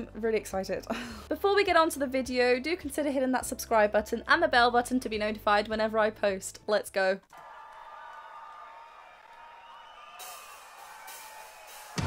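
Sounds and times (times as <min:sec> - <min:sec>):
quiet music: 0:00.0 - 0:07.2
crowd cheering and whooping: 0:07.3 - 0:12.0.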